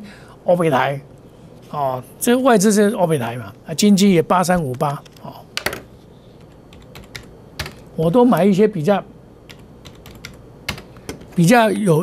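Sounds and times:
computer keys clicking: 4.6 - 8.5, 9.5 - 11.3.

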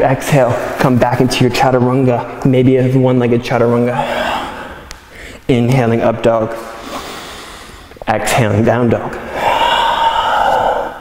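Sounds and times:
man exhaling: 9.2 - 11.0.

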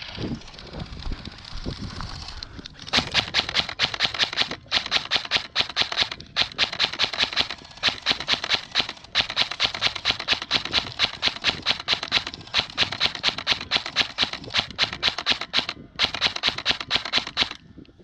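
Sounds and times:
airsoft rifle firing: 2.9 - 17.6.

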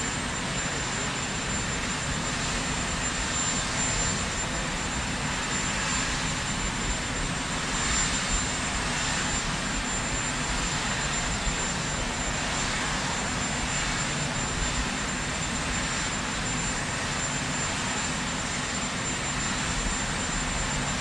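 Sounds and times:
helicopter turbine drone: 0.0 - 21.0
high turbine whine: 0.0 - 21.0.

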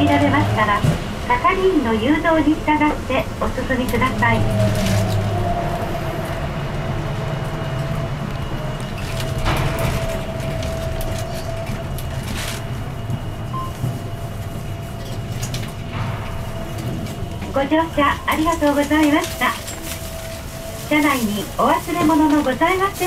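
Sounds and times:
low running rumble: 0.0 - 23.0.

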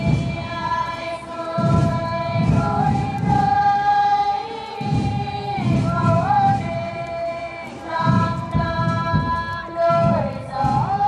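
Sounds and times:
choir singing a slow hymn: 0.0 - 11.0.

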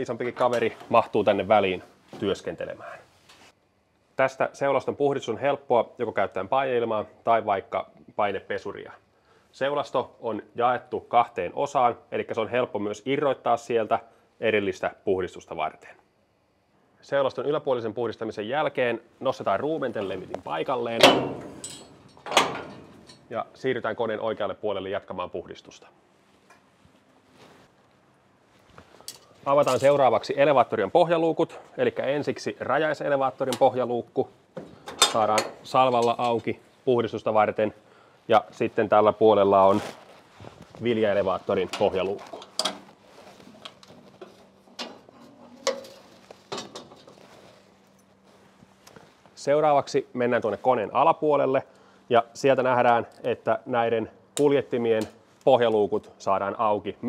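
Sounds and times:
metal hatch rattling: 20.9 - 23.3
sharp metal knocks: 21.0 - 23.2
loud metal clanks: 21.0 - 23.3.

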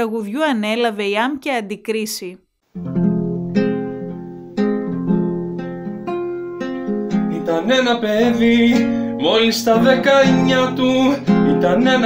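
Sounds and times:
acoustic guitar strumming: 2.7 - 12.0.

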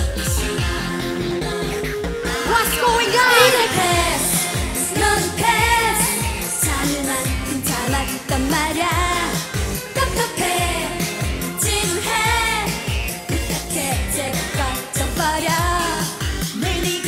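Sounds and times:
women singing: 0.4 - 17.0
dance-pop track with kick drum: 4.0 - 17.0.

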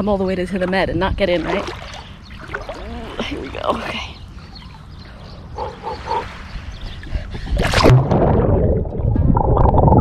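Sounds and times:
low rumble on microphone: 0.7 - 10.0.

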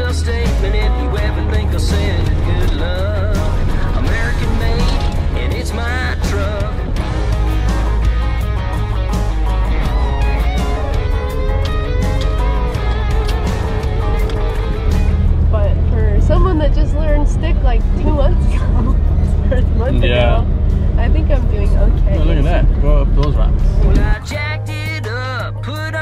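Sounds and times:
song with singing over steady bass: 0.0 - 26.0.

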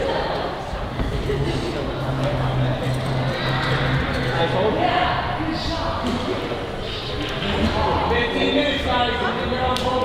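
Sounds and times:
indistinct voices: 0.0 - 10.0
steady low hum: 0.1 - 9.6.

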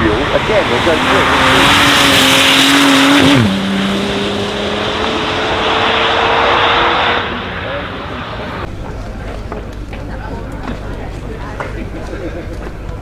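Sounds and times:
murmur of voices outdoors: 0.0 - 2.8, 6.4 - 13.0
car engine pulling away: 0.0 - 8.7.

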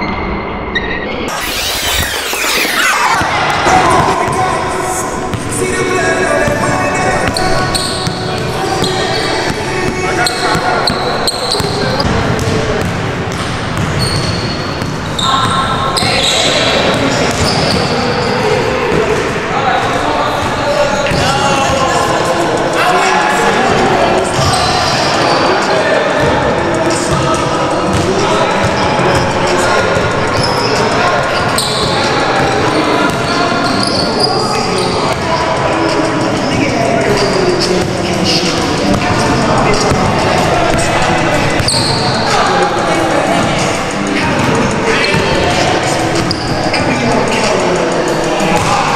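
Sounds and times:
indistinct overlapping voices: 0.0 - 48.9.

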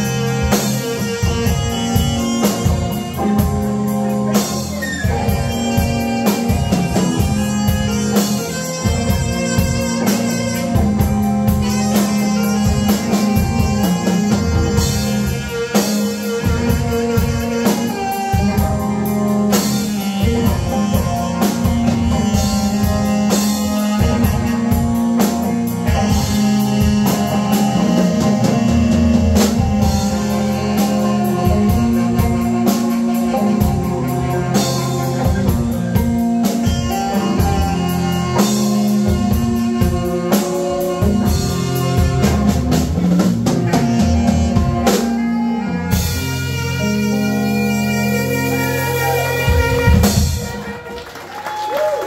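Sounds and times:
drum kit: 0.0 - 52.0
electric guitar: 0.0 - 52.0
saxophone: 0.0 - 52.0.

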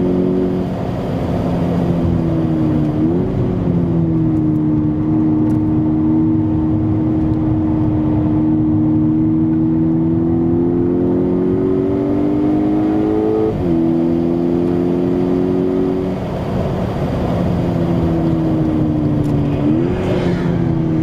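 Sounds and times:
car engine accelerating hard: 0.0 - 21.0.

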